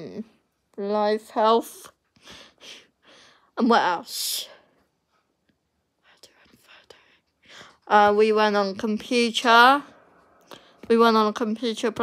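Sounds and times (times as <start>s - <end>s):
soft breath: 4.4s - 7.9s, 9.9s - 10.9s.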